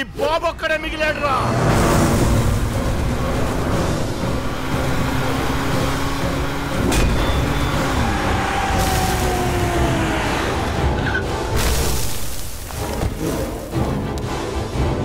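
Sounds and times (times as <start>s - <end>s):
tyres skidding on dirt: 0.9s - 13.9s
car engine running hard: 1.3s - 11.5s.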